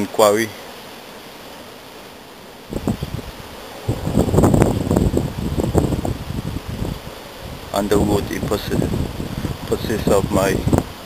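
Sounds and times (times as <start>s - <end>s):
leaves rustling: 0.0s - 11.0s
wind buffeting microphone: 2.7s - 11.0s.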